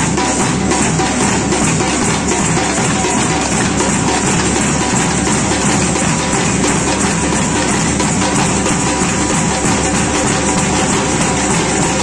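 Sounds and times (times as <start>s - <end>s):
drums: 0.0s - 12.0s.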